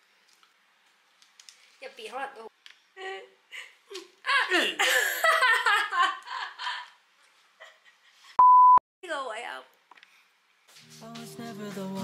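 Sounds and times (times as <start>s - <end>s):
electronic censor beep: 8.4s - 8.8s.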